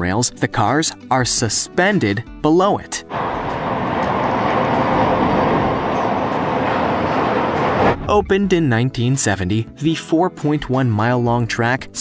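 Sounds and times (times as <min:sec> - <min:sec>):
monorail car rushing hum: 0:03.1 - 0:08.6.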